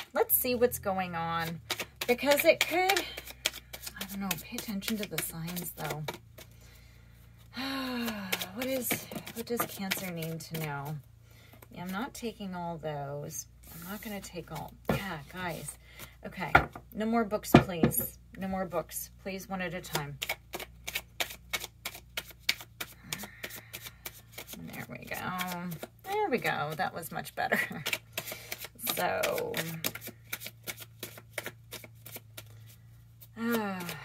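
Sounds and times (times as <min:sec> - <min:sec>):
cards being shuffled: 0:01.3 - 0:06.6, 0:07.9 - 0:11.7, 0:13.6 - 0:16.8, 0:19.8 - 0:34.0
woman sighing: 0:07.5 - 0:08.3.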